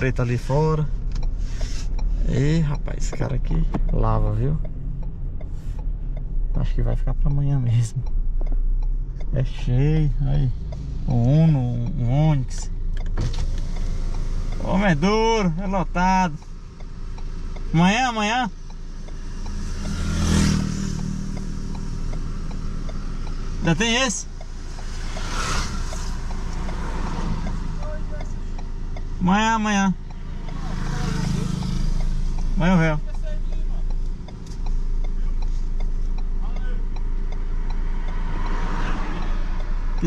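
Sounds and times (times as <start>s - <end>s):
engine and road noise: 0.0s - 40.0s
light regular ticking: 0.0s - 40.0s
vehicle passing by: 13.6s - 40.0s.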